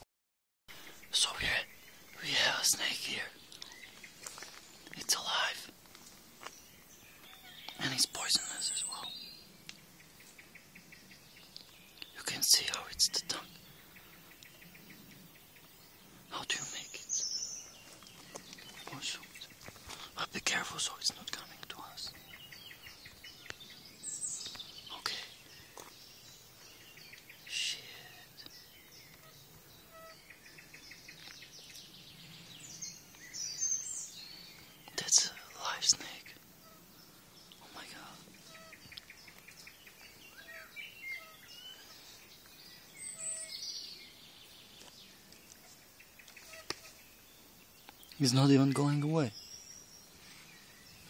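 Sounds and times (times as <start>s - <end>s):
birds chirping and calling: 0.7s - 51.0s.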